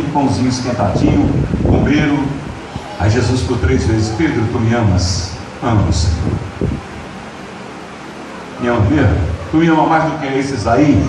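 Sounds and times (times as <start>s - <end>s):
man speaking into a microphone: 0.0s - 6.4s, 8.6s - 11.0s
background hiss of room noise: 0.0s - 11.0s.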